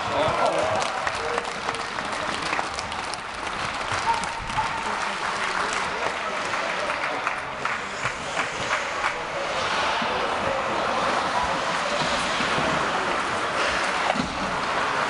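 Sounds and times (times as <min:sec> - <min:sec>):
crowd clapping: 0:00.0 - 0:10.0
overlapping voices: 0:00.0 - 0:15.0.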